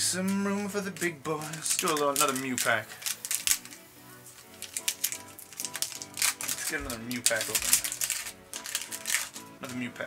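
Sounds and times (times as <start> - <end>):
foil pack rustling and clicking: 0.0 - 10.0
soft background music: 0.0 - 10.0.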